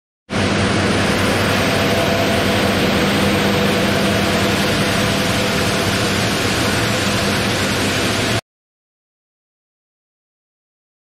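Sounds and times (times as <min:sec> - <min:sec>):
stone cutting saw hum: 0:00.4 - 0:08.4.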